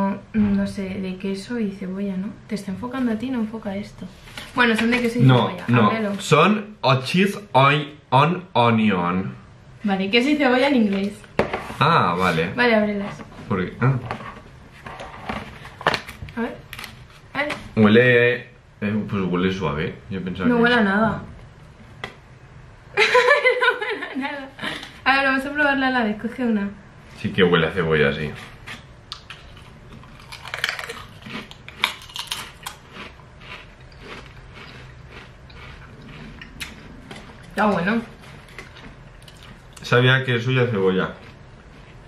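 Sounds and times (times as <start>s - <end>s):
people chewing: 28.3s - 40.0s, 40.8s - 42.0s
crisps crunching: 28.6s - 39.9s.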